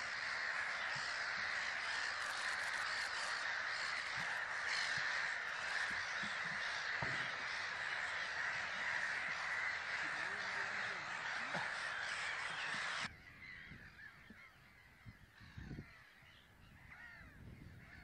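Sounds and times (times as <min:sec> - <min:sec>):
flock of birds calling: 0:00.0 - 0:18.0.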